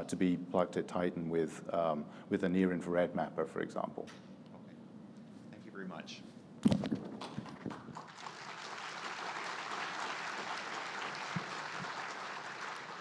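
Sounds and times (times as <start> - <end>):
audience applauding: 7.2 - 13.0.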